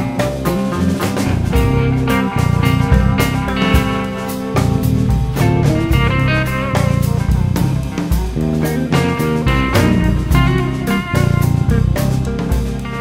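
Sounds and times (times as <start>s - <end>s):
drum kit beat: 0.0s - 13.0s
electric guitars: 0.0s - 13.0s.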